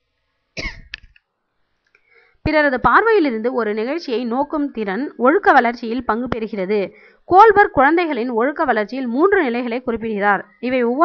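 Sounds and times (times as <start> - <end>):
person coughing: 0.6 - 0.9.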